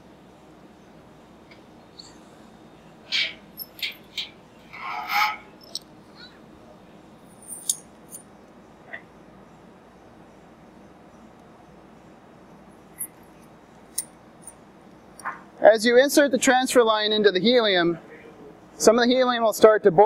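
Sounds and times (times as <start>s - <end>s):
metallic clinks and knocks: 3.1s - 5.9s, 7.3s - 8.3s, 12.9s - 15.4s.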